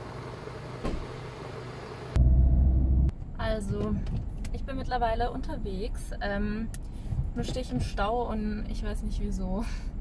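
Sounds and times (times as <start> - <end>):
low car rumble: 0.0 - 10.0.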